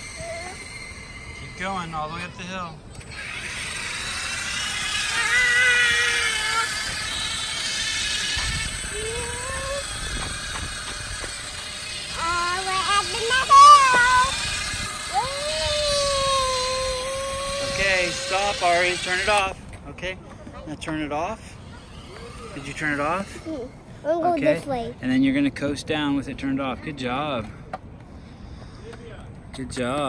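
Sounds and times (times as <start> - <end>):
electric motor whine: 0.0 - 19.7, 21.4 - 23.9.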